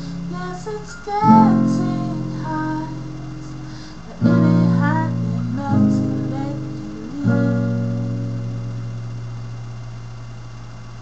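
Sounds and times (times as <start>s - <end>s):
acoustic guitar chord ringing: 0.0s - 10.6s
microphone hiss: 0.0s - 11.0s.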